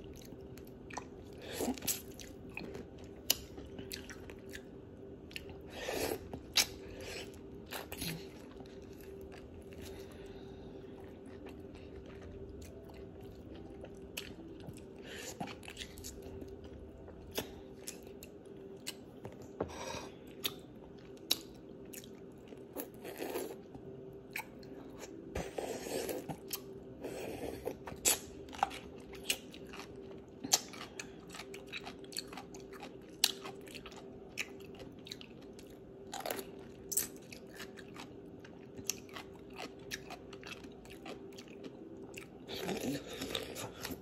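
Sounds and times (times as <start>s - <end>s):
faint steady hum: 0.0s - 44.0s
crunchy pickle chewing: 24.3s - 44.0s.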